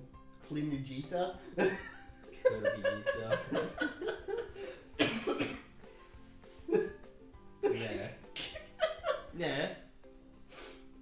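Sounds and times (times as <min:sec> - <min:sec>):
man laughing: 0:01.6 - 0:05.3, 0:06.7 - 0:07.0, 0:07.6 - 0:09.3.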